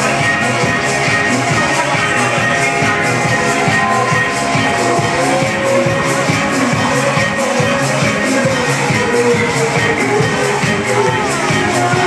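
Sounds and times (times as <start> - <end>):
disco electronic dance music: 0.0 - 12.0
pulsing synth bass: 0.0 - 12.0.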